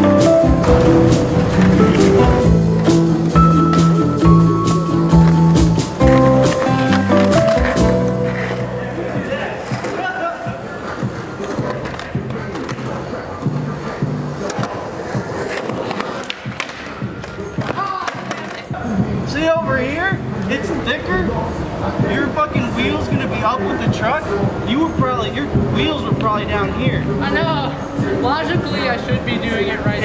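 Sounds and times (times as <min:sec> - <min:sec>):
skateboard clacking and knocking: 0:00.0 - 0:18.8
music: 0:00.0 - 0:30.0
skateboard wheels rolling on concrete: 0:00.0 - 0:30.0.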